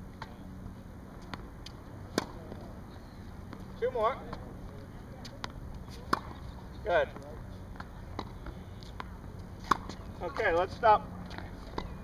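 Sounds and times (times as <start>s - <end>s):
racket hitting tennis ball: 1.2s - 2.7s, 5.3s - 6.5s, 7.8s - 10.4s
tennis ball knocks: 2.1s - 2.7s.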